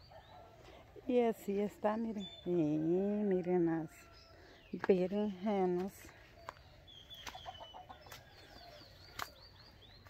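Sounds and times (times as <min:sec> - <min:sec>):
small birds chirping: 0:00.0 - 0:10.0
hens clucking: 0:07.2 - 0:09.3.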